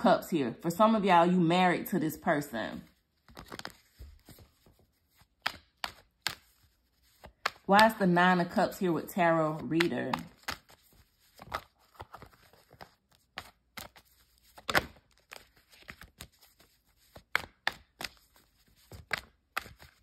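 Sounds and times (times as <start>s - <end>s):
cards clicking and tapping: 3.2s - 8.1s, 9.5s - 20.0s.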